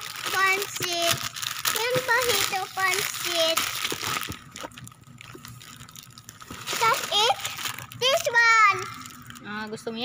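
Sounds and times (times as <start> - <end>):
rustling of plastic snack packets: 0.0 - 9.6
child's high voice: 0.2 - 3.8, 6.7 - 9.1.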